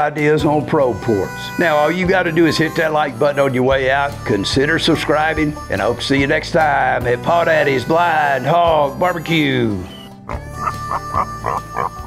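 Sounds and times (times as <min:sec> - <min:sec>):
short laugh-like cries: 0:09.9 - 0:12.0.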